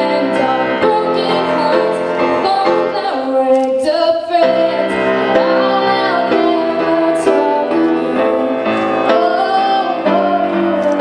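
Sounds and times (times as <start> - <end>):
piano accompaniment: 0.0 - 11.0
woman singing a slow ballad: 0.0 - 11.0.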